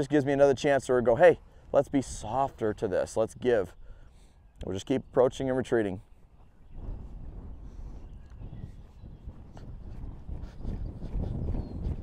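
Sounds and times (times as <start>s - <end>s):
wind on microphone: 3.7s - 12.0s
hoofbeats on sand: 6.4s - 12.0s.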